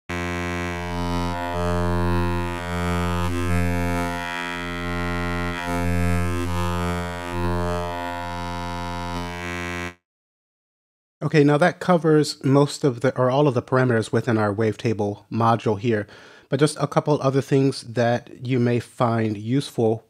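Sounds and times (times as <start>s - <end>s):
low synthesizer note: 0.1s - 10.0s.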